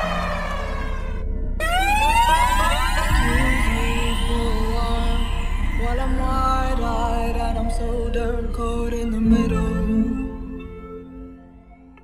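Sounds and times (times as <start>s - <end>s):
siren-like synth sweeps: 0.0s - 10.8s
low bass pulse: 0.0s - 11.4s
held synth notes: 0.0s - 12.0s.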